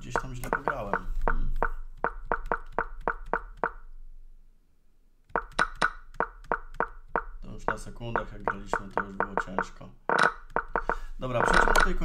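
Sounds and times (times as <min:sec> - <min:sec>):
chess piece clicks: 0:00.0 - 0:03.8, 0:05.4 - 0:12.0.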